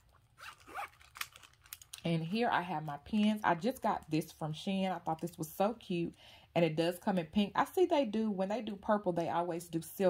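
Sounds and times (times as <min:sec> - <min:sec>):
handling of vinyl pen pouch: 0:00.0 - 0:02.1.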